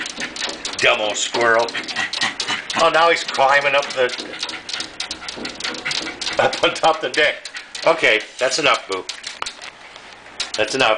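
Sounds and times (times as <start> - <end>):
quick clicks and taps: 0.0 - 10.9
dog whimpering and panting: 1.2 - 6.8.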